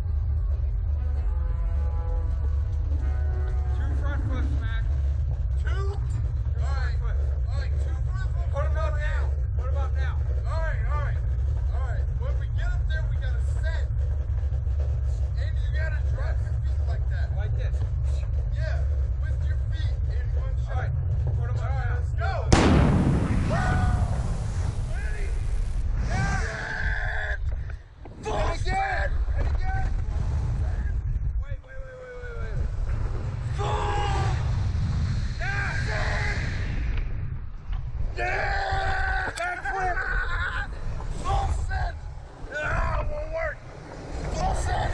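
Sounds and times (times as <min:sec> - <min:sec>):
steady low rumble: 0:00.0 - 0:44.9
voices: 0:00.3 - 0:34.6, 0:38.0 - 0:44.9
loud rush of noise: 0:22.4 - 0:26.8, 0:32.4 - 0:38.2.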